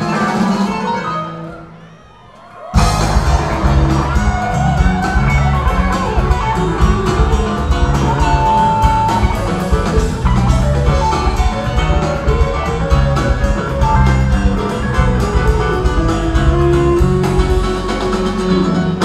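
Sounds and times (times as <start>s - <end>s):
rock band playing: 0.0s - 1.8s, 2.6s - 19.0s.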